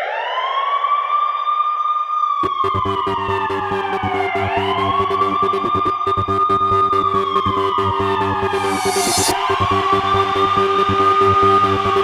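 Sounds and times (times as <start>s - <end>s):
siren-like rising tone: 2.4s - 12.0s.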